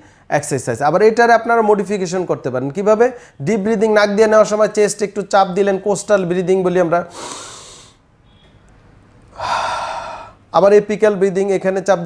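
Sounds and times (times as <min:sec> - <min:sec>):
man breathing in deeply: 0:07.1 - 0:08.0, 0:09.3 - 0:10.5.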